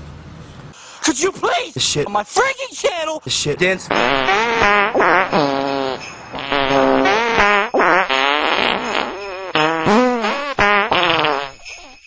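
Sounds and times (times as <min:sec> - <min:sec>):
fart noises played as a tune: 0:03.9 - 0:12.0.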